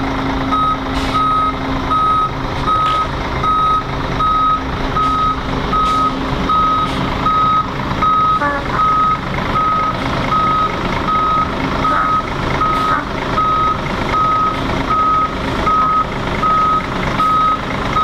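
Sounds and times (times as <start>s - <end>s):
bus engine running: 0.0s - 18.0s
reversing alarm beeping: 0.5s - 18.0s.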